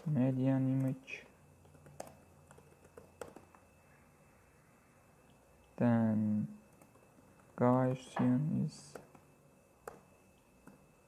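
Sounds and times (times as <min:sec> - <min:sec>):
computer keyboard typing: 0:00.0 - 0:03.7, 0:06.7 - 0:08.0, 0:08.8 - 0:10.8.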